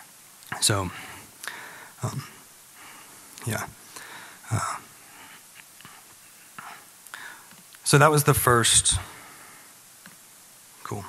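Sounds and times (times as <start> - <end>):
low room noise: 0.0 - 11.0
soft breaths: 0.8 - 7.7, 8.8 - 9.9
man speaking into a microphone: 3.4 - 3.8, 7.8 - 9.2.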